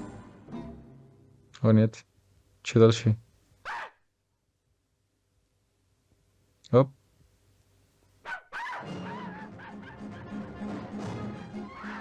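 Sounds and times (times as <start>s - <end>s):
cartoon dog yelping and whining: 3.6s - 4.0s, 8.3s - 10.4s, 11.6s - 12.0s.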